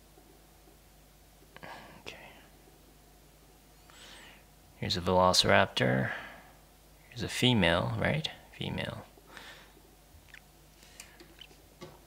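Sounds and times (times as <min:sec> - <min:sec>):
faint low hum: 0:00.0 - 0:12.0
man softly speaking: 0:04.8 - 0:06.4, 0:07.1 - 0:09.1.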